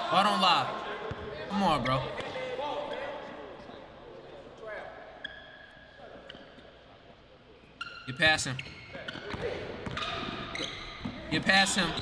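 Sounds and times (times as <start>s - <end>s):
sneaker squeak on court: 5.2s - 6.8s, 7.7s - 11.3s
basketball bouncing: 9.3s - 10.4s.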